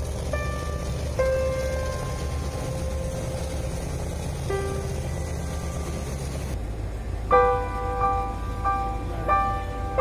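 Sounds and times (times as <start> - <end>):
hovercraft engines rumbling: 0.0 - 10.0.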